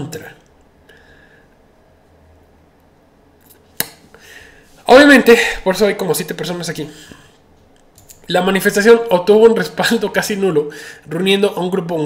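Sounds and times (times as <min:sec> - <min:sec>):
faint low hum: 0:00.0 - 0:12.0
sharp click: 0:03.4 - 0:04.1.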